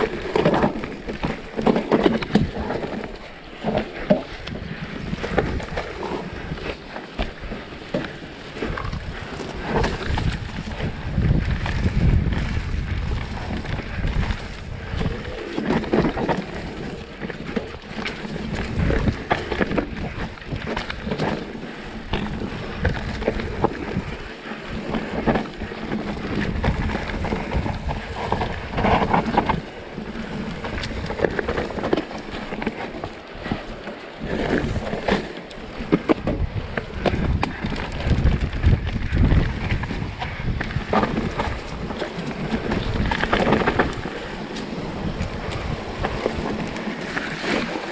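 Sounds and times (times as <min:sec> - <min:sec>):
bike clattering over bumps: 0:00.0 - 0:47.9
bike tyres rolling over dirt: 0:00.0 - 0:47.9
wind buffeting microphone: 0:00.0 - 0:47.9.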